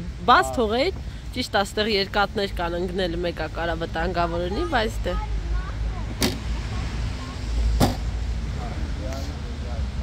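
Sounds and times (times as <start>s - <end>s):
sharp knocks: 7.8s - 8.1s.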